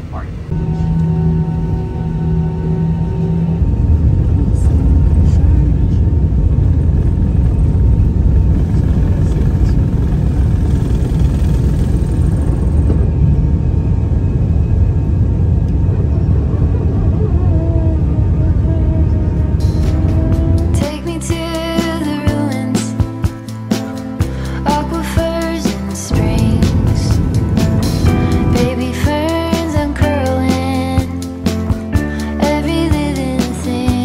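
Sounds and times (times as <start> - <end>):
jet engines rumbling: 0.0 - 33.0.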